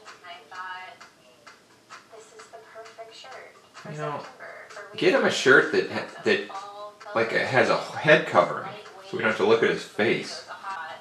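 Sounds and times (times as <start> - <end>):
speech from laptop speakers: 2.1 - 11.0.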